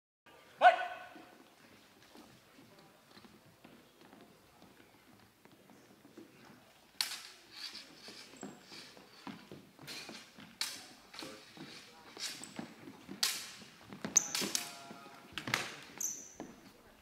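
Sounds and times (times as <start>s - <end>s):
loud shouted call: 0.6s - 1.3s
footsteps on wooden floor: 1.2s - 6.7s, 7.8s - 16.8s.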